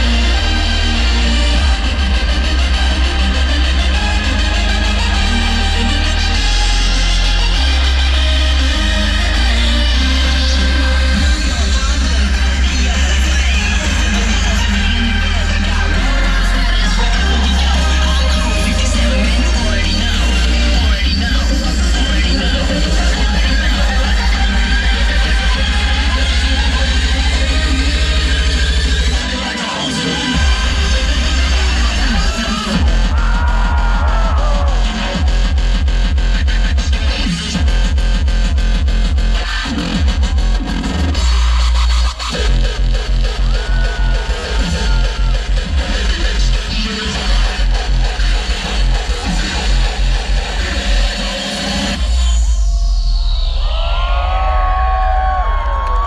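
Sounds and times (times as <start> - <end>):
distorted kick drum: 30.4 - 41.5.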